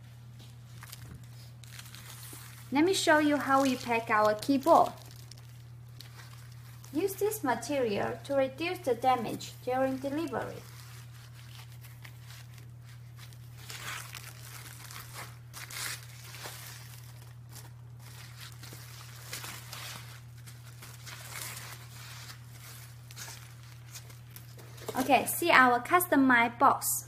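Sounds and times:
bubble wrap and foam crinkling: 0.0s - 25.3s
steady low hum: 0.0s - 26.8s.

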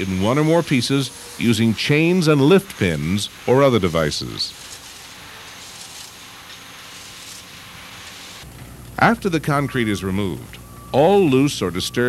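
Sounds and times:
heavy machinery noise: 0.0s - 12.0s
low quiet hum: 8.4s - 12.0s.

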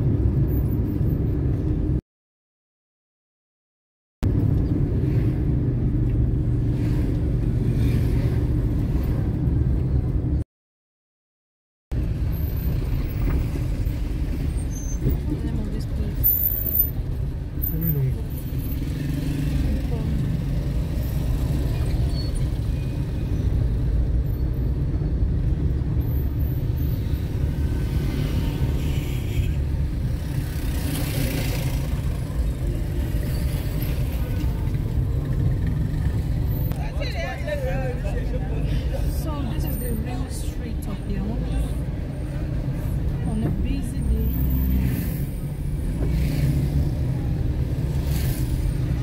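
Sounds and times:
car engine and road rumble: 0.0s - 2.0s, 4.2s - 10.4s, 11.9s - 49.0s.

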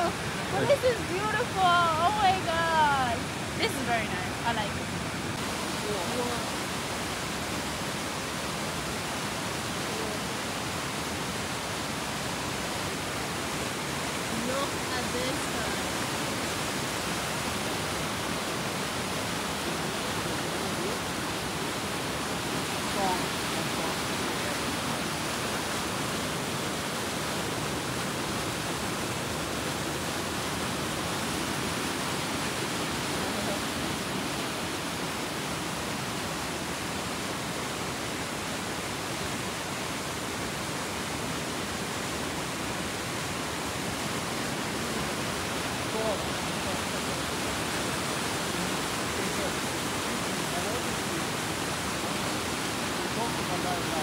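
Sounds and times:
river rushing over rocks: 0.0s - 54.0s.

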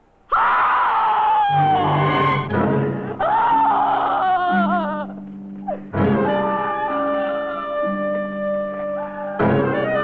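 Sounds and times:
woman screaming: 0.3s - 2.5s, 3.2s - 5.2s, 6.2s - 10.0s
low orchestral music: 1.8s - 10.0s.

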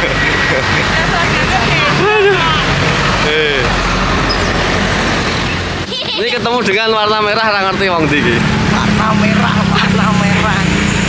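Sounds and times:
bus engine humming: 0.0s - 11.0s
road noise: 0.0s - 11.0s.

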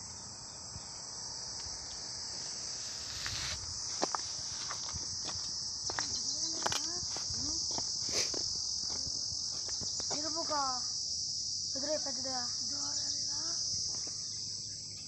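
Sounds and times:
crickets shrilling: 0.0s - 15.0s.

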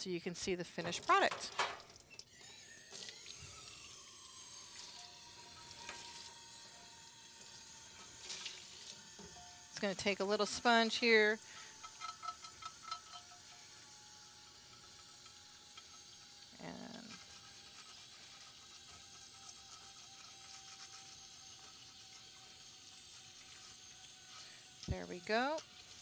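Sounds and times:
tap water running into steel sink: 0.7s - 3.8s, 4.6s - 26.0s
sponge scrubbing a dish: 16.7s - 26.0s.

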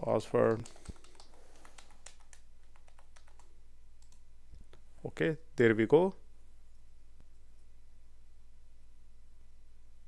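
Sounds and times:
low steady hum: 0.0s - 10.0s
keyboard typing: 0.4s - 4.2s.

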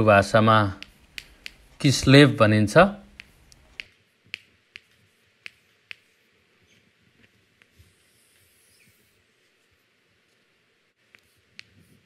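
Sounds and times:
chalk tapping on a blackboard: 0.6s - 2.2s, 3.0s - 6.8s, 11.0s - 12.0s.

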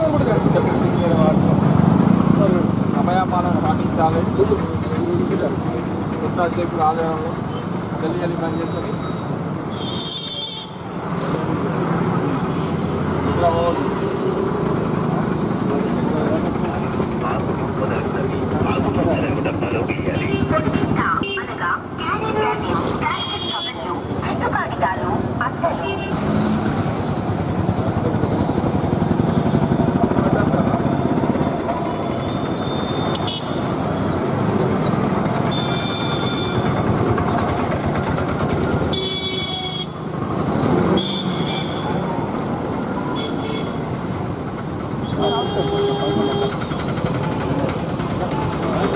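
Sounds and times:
motorcycles passing: 0.0s - 48.9s
road traffic: 0.0s - 48.9s
people talking: 15.6s - 26.1s, 45.2s - 48.9s
car horn toots: 38.9s - 40.0s, 45.2s - 46.7s.

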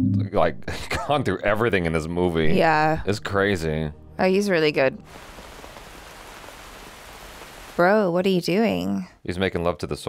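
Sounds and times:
steady rainfall hiss: 5.0s - 8.0s.

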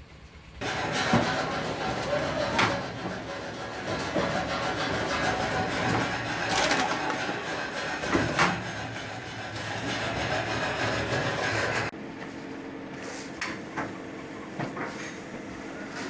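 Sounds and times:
cutting machine humming: 0.6s - 11.9s.

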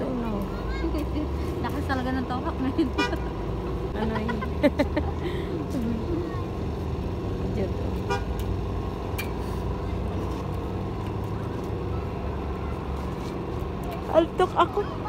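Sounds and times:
low outdoor rumble with hum: 0.0s - 15.0s
faint children's voices: 0.2s - 1.2s, 5.8s - 6.9s, 9.5s - 14.1s.

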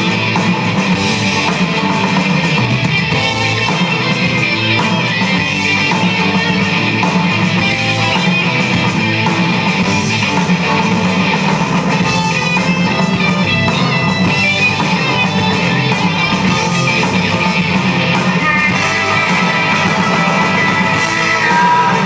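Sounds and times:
rock band playing: 0.0s - 22.0s.

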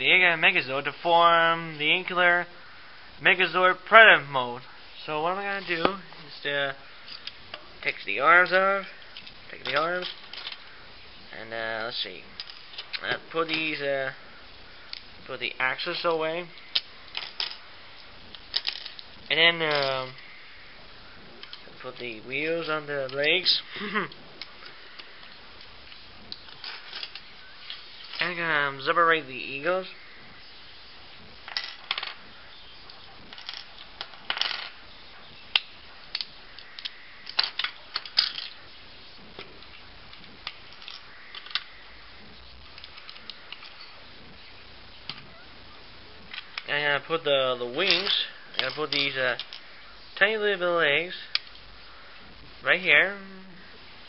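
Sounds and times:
plastic pieces clicking: 35.5s - 38.6s.

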